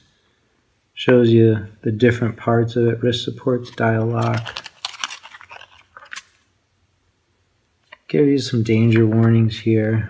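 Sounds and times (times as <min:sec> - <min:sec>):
paper pages turning: 0:03.4 - 0:06.5.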